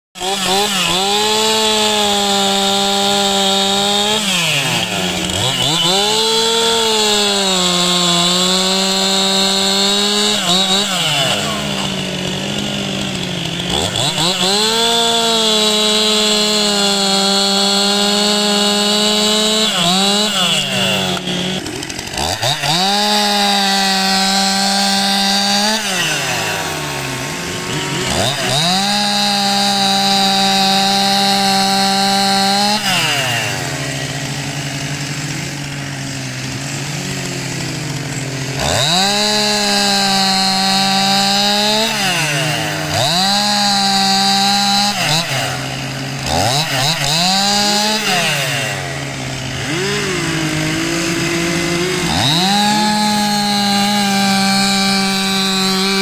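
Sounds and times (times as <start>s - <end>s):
chainsaw revving: 0.1s - 56.0s.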